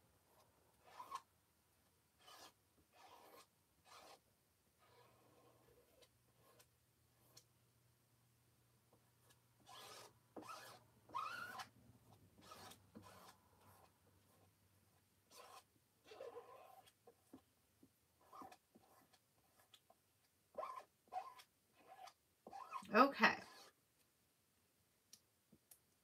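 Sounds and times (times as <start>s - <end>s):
squeegee scraping over mesh: 2.2s - 4.2s, 9.6s - 11.7s, 12.4s - 14.5s, 15.3s - 17.0s, 20.6s - 23.8s.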